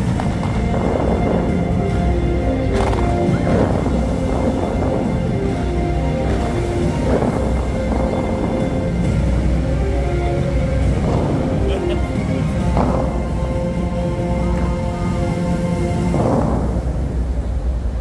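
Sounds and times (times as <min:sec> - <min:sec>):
music over loudspeakers: 0:00.0 - 0:17.4
water jets rushing: 0:00.0 - 0:18.0.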